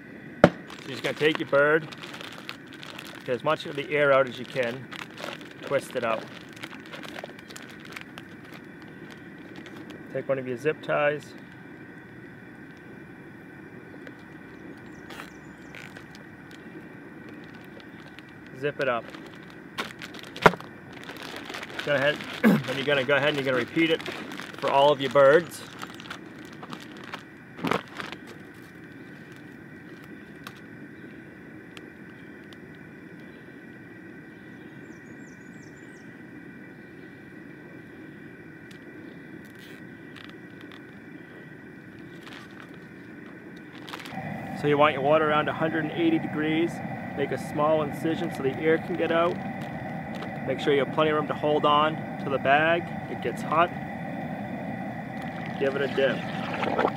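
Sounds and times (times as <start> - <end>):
low background hum: 0.0 - 56.9
low background rumble: 0.0 - 56.9
plastic bag crinkling: 0.4 - 10.1, 14.0 - 30.6, 39.4 - 40.9, 42.0 - 46.2, 46.8 - 50.8, 51.6 - 56.9.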